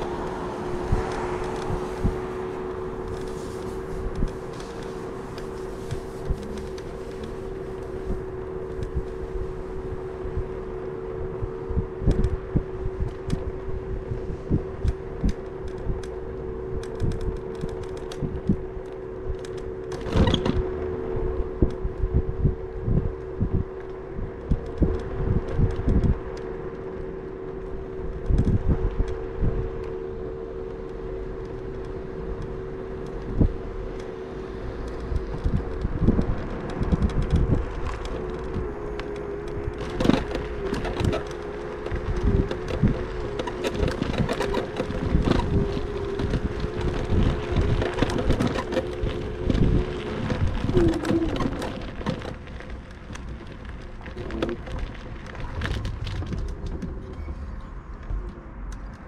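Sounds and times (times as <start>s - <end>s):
electric scooter motor whining: 0.0s - 58.3s
scooter rattling over road: 0.0s - 58.6s.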